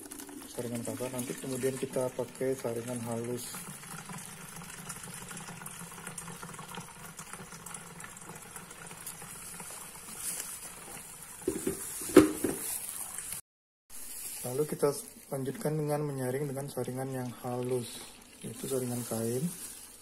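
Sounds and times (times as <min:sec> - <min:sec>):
thick liquid pouring through strainer: 0:00.0 - 0:13.4, 0:15.1 - 0:20.0.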